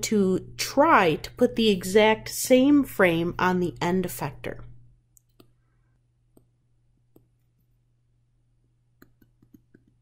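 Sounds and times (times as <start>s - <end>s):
low electrical hum: 0.0s - 10.0s
stylus tapping on drawing tablet: 6.3s - 7.5s, 9.0s - 10.0s.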